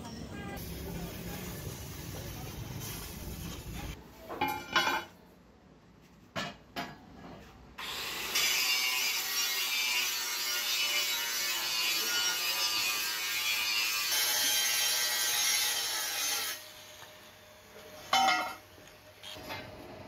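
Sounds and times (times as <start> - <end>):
angle grinder grinding metal: 7.8 - 17.2.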